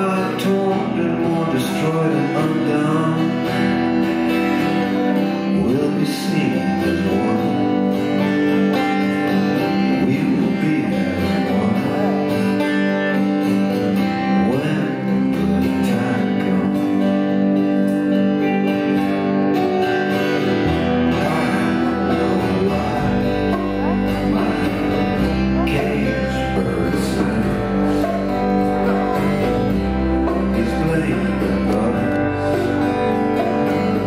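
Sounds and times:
man singing into a microphone: 0.0s - 13.3s, 14.0s - 18.9s, 20.4s - 34.0s
guitars playing a song: 0.0s - 34.0s.

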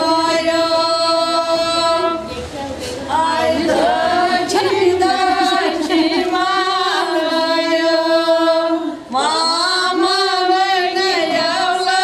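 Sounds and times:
women singing a long note: 0.0s - 2.4s, 3.0s - 12.0s.

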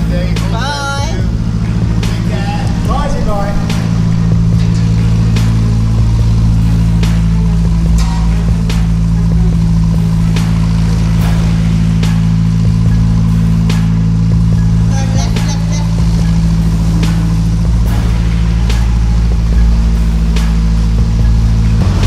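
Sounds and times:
diesel engine drone in tunnel: 0.0s - 22.0s.

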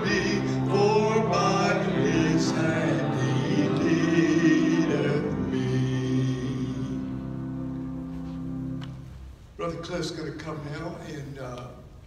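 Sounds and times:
hymn sung with instruments: 0.0s - 8.5s.

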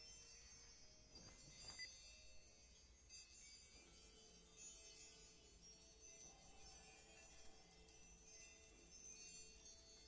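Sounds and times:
faint high chiming tones: 0.0s - 10.0s.

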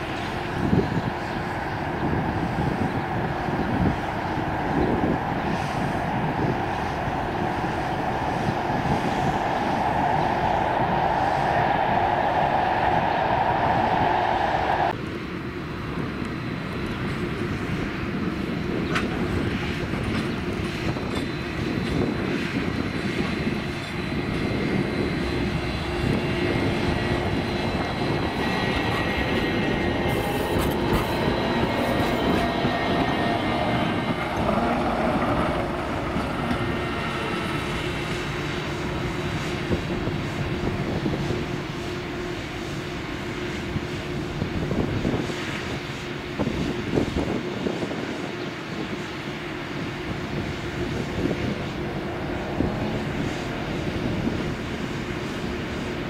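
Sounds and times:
tram motor hum: 0.0s - 56.0s
tram wheels rumbling on rail: 0.0s - 56.0s
sharp rail noises: 24.7s - 39.7s.

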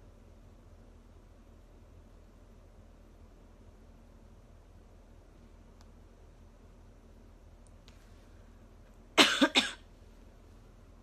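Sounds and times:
woman coughing: 9.2s - 9.9s.

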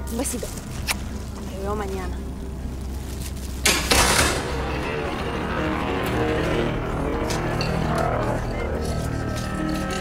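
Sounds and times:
steady low rumble: 0.0s - 10.0s
dramatic background music: 0.1s - 10.0s.

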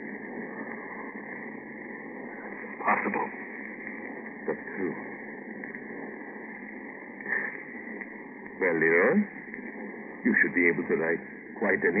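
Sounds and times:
radio recording hiss: 0.0s - 12.0s.

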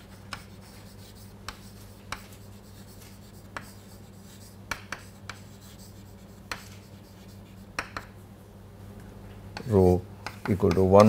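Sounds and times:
chalk writing on a chalkboard: 0.0s - 8.2s, 9.6s - 11.0s
steady low hum: 0.0s - 11.0s.

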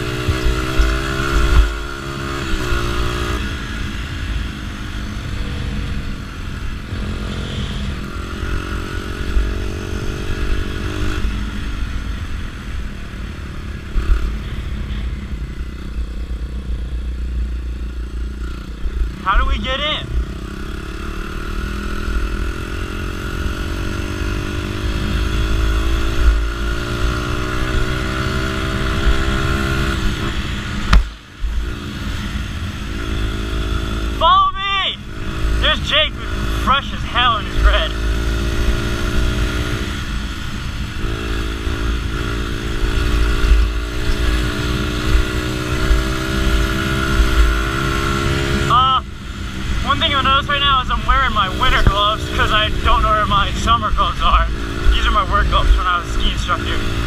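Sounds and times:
dirt bike engine: 0.0s - 57.0s.

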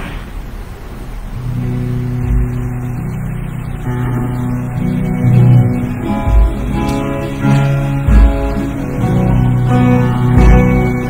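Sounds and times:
sustained low band chords: 1.4s - 11.0s.

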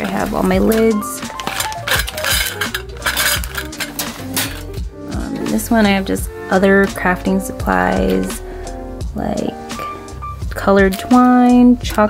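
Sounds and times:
wire drawer clatter: 0.0s - 4.9s
metal lids clinking in bag: 0.0s - 5.7s, 7.9s - 8.4s.

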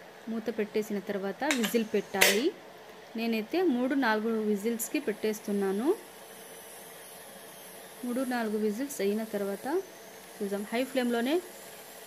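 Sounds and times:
pressure cooker hissing: 4.6s - 12.0s.

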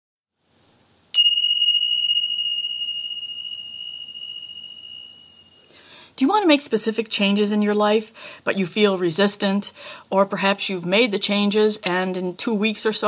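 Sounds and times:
small bell ringing high tone: 1.1s - 5.8s.

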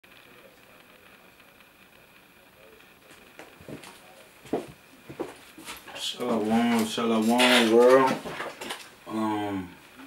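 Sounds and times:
footsteps on creaky floor: 3.1s - 8.9s.

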